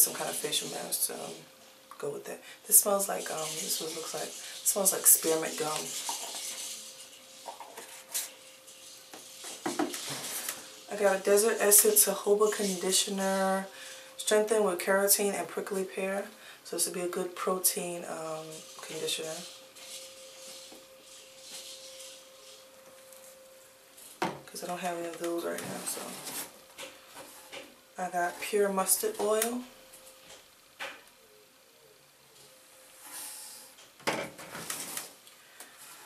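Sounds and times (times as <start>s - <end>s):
faint steady high hum: 0.0s - 36.0s.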